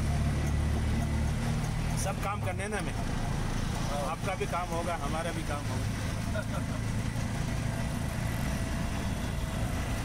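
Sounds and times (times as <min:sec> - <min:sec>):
auto rickshaw engine rumbling: 0:00.0 - 0:10.0
road noise: 0:00.0 - 0:10.0.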